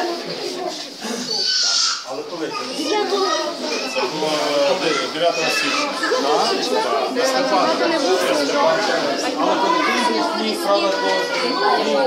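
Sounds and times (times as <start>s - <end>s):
crowd of overlapping voices: 0.0s - 12.0s.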